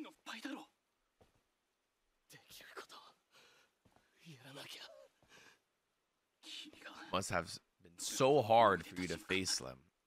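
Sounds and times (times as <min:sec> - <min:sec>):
person whispering: 0:02.3 - 0:03.2, 0:04.2 - 0:05.2, 0:06.4 - 0:07.2.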